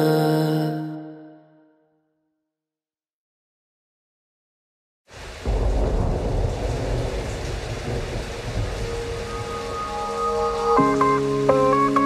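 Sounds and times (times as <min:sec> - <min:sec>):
rain hissing: 0:05.1 - 0:12.0
thunder rumbling: 0:05.2 - 0:11.7.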